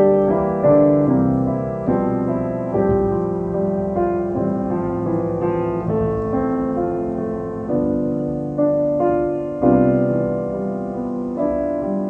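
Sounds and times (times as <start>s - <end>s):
piano playing slow chords: 0.0s - 12.0s.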